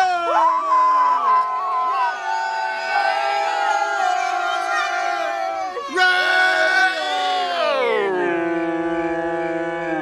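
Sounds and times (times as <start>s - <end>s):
crowd cheering and whooping: 0.0s - 8.1s.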